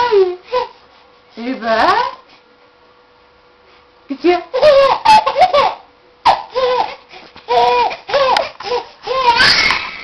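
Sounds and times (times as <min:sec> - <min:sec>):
baby laughing: 0:04.5 - 0:10.0.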